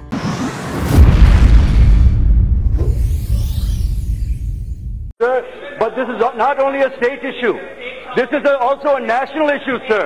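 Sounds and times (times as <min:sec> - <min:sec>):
short rising sweep: 0:00.0 - 0:01.4
deep rumbling boom: 0:00.8 - 0:03.1.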